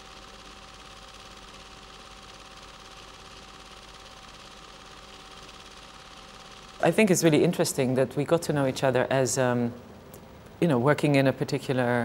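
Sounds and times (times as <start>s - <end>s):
low mechanical whirr: 0.0s - 12.0s
thin steady hum: 0.0s - 12.0s.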